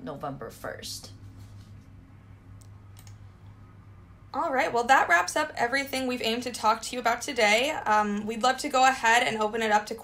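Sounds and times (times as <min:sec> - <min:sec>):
low electrical hum: 0:00.0 - 0:10.0
computer mouse clicks: 0:02.6 - 0:03.2.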